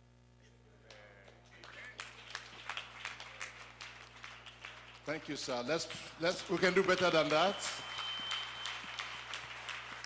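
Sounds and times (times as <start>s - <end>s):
crowd applauding: 0.9s - 10.0s.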